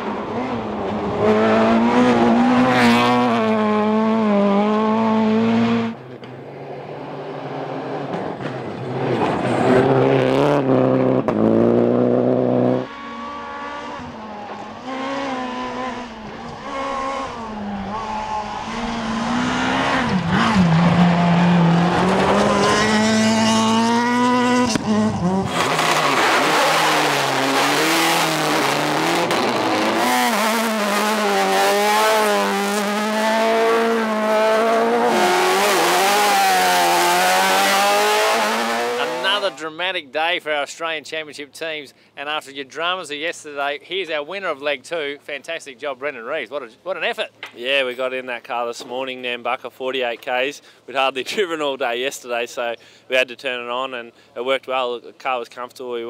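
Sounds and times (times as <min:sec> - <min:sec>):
rally car engines revving: 0:00.0 - 0:39.6.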